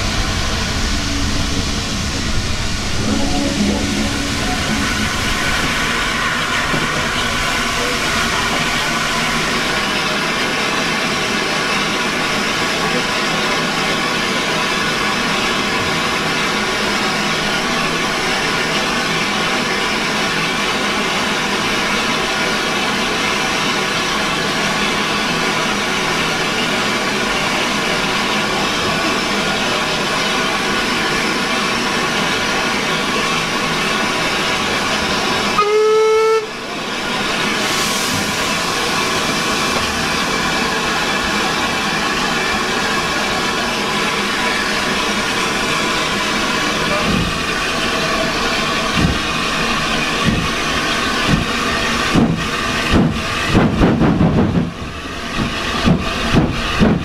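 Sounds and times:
steam hissing: 0:00.0 - 0:57.0
steam locomotive whistle: 0:00.8 - 0:06.0, 0:35.5 - 0:36.7.

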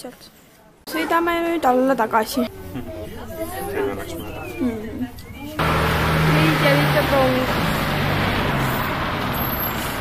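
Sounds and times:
car engine running: 0:05.6 - 0:09.2.

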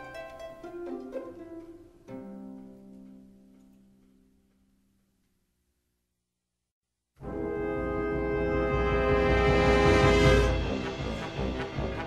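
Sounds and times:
orchestral strings: 0:00.0 - 0:03.3, 0:07.2 - 0:12.0.

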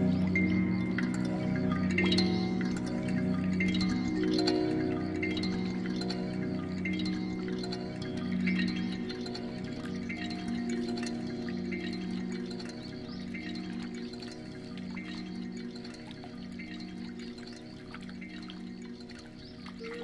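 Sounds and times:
faint chime-like plinks: 0:00.0 - 0:20.0
low sustained drone tones: 0:00.0 - 0:20.0.

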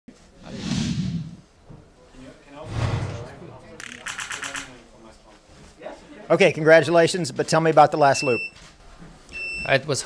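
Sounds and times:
whoosh: 0:00.4 - 0:01.5, 0:02.6 - 0:03.8
low boom: 0:02.7 - 0:03.8.

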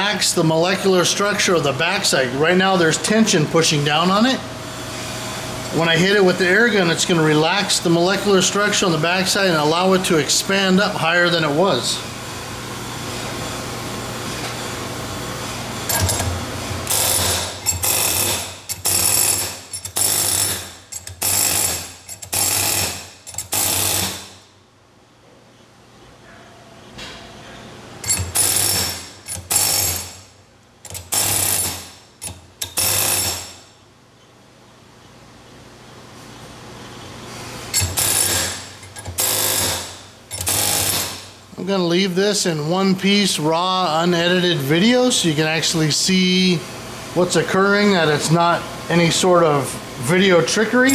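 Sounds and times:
steady hum: 0:00.0 - 0:50.9
pneumatic air hammer rattling on metal: 0:15.9 - 0:24.4, 0:28.0 - 0:33.7, 0:37.7 - 0:41.4.

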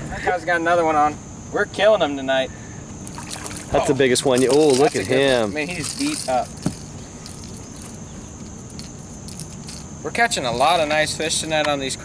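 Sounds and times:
high insect buzz: 0:00.0 - 0:12.0.

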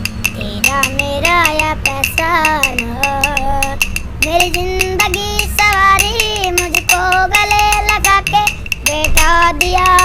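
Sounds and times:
hand clappers clicking: 0:00.0 - 0:10.0
boy singing high voice: 0:00.3 - 0:10.0.

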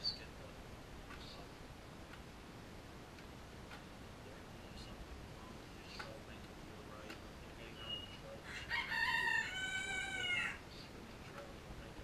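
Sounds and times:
rooster crowing: 0:08.4 - 0:10.6.

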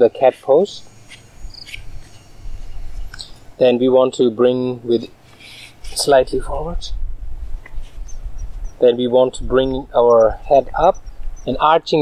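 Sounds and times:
insects chirping: 0:00.2 - 0:03.7, 0:07.7 - 0:11.9
low rumble: 0:05.9 - 0:11.7.

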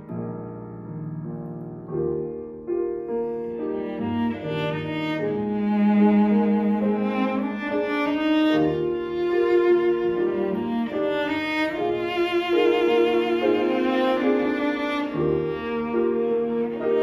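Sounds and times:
piano accompaniment: 0:00.0 - 0:17.0
cellos bowing a melody: 0:02.2 - 0:17.0.

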